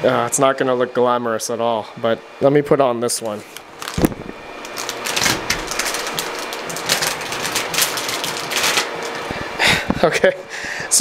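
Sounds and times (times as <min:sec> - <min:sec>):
plastic bag crinkling: 0:03.5 - 0:09.3.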